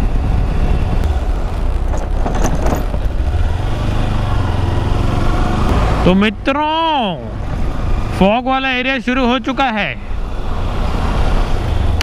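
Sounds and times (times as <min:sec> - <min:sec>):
wind rush over microphone: 0:00.0 - 0:03.8.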